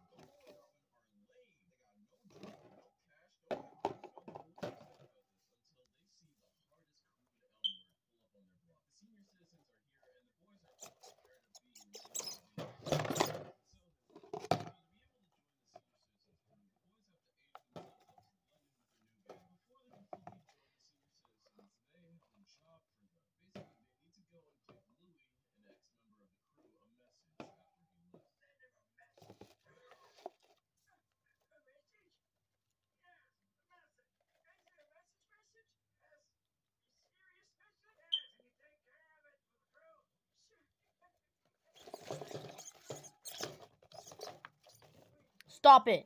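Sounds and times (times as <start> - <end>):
faint whispered speech: 0.0 - 3.6, 4.2 - 46.0
mice scuffling in bedding: 41.7 - 45.3.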